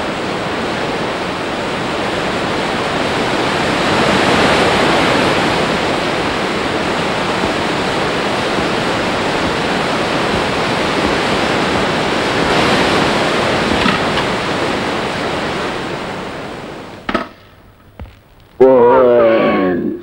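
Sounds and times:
rushing wind: 0:00.0 - 0:19.8.

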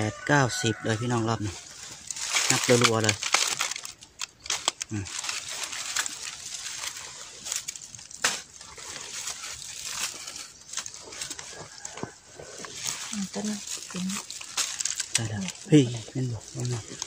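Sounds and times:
dry leaves rustling: 0:00.0 - 0:17.0
hands scratching dry soil: 0:00.0 - 0:17.0
person speaking: 0:15.2 - 0:17.0.

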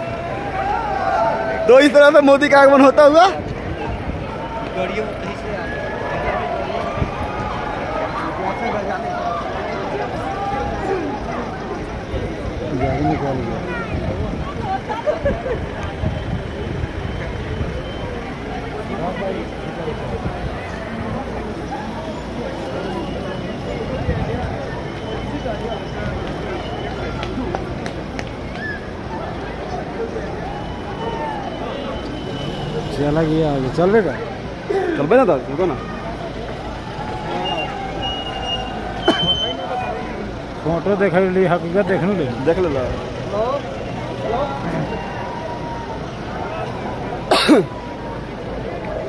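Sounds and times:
crowd chatter: 0:00.0 - 0:49.0
distant voices: 0:00.0 - 0:49.0
vehicles rumbling past: 0:00.0 - 0:49.0.

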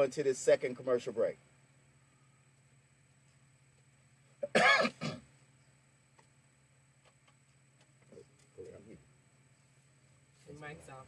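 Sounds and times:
low steady hum: 0:00.0 - 0:11.0
person clearing throat: 0:04.4 - 0:05.2.

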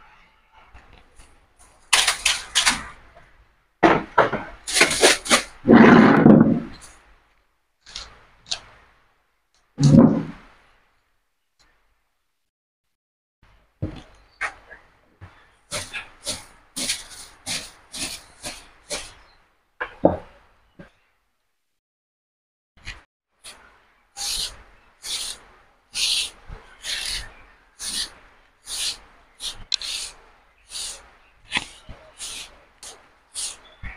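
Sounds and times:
knocks: 0:03.8 - 0:04.6
broom scraping: 0:04.7 - 0:07.0, 0:15.2 - 0:19.3, 0:23.4 - 0:33.9
broom sweeping: 0:15.7 - 0:19.2, 0:24.2 - 0:33.9.

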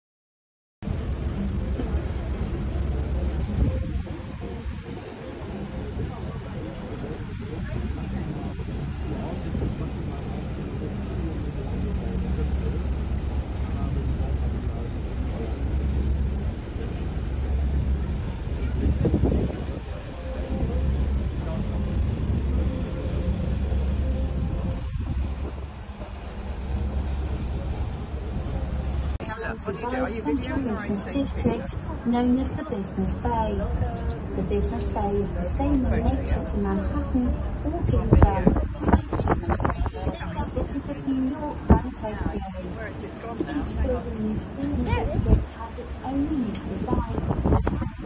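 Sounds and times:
boat engine rumble: 0:00.8 - 0:48.0
wind buffeting microphone: 0:00.9 - 0:29.7, 0:30.9 - 0:42.9, 0:43.6 - 0:48.0.

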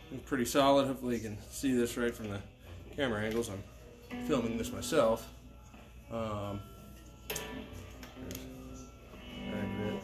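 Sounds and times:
electric guitar strings ringing: 0:04.1 - 0:05.2, 0:07.3 - 0:10.0.

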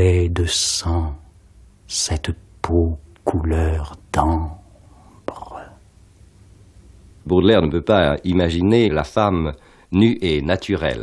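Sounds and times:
low background hiss: 0:00.0 - 0:11.0
faint breath: 0:09.6 - 0:09.9.

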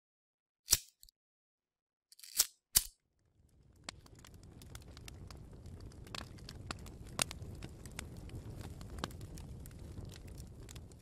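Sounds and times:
crackling clicks: 0:02.2 - 0:11.0.

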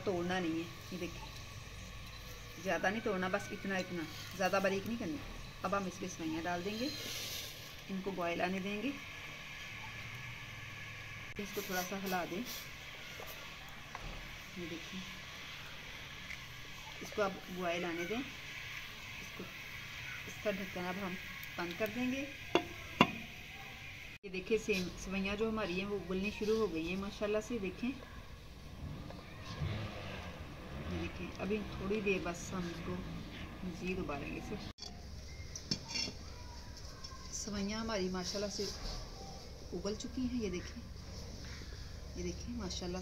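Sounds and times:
steady hiss: 0:04.0 - 0:27.4
utensil clinking on clay pot: 0:22.5 - 0:23.3, 0:34.8 - 0:36.3.

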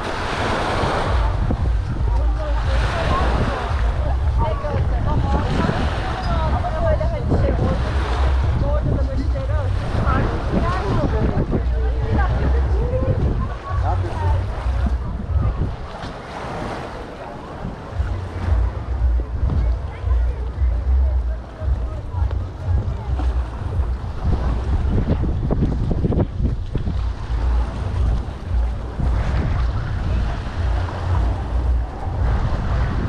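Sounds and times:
distant voices: 0:00.0 - 0:33.0
water: 0:00.0 - 0:33.0
wind buffeting microphone: 0:00.0 - 0:33.0.

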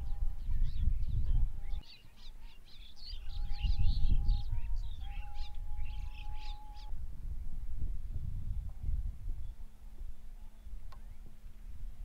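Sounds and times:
small birds chirping: 0:00.0 - 0:06.9.

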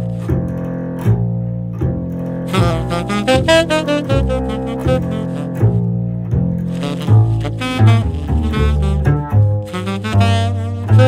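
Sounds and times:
plucked double bass: 0:00.0 - 0:11.0
tenor saxophone playing jazz: 0:02.4 - 0:11.0.

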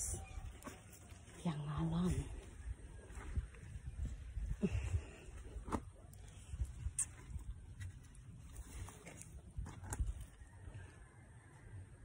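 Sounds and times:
footsteps on garden ground: 0:00.0 - 0:10.8.

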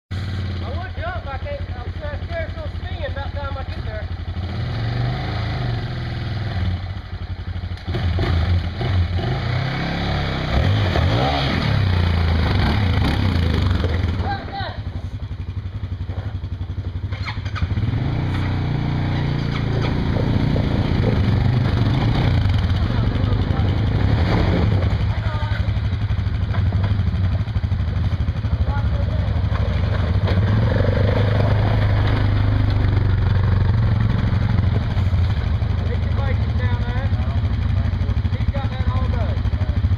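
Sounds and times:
atv engines idling and revving: 0:00.1 - 0:39.9.

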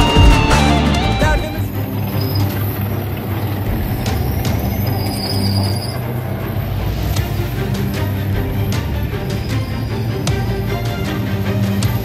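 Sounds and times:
tank engine rumbling: 0:00.0 - 0:12.0.

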